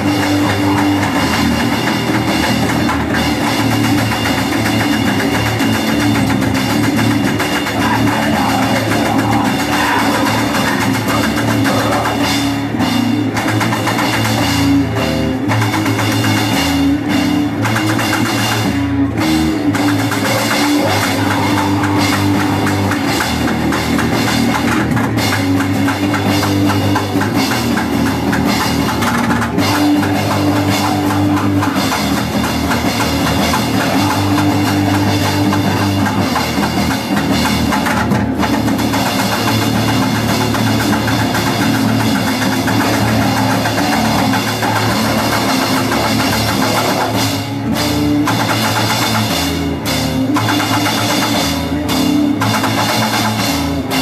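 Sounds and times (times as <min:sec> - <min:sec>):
distorted guitar and bass riffs: 0:00.0 - 0:54.0
fast drum kit playing: 0:00.0 - 0:54.0.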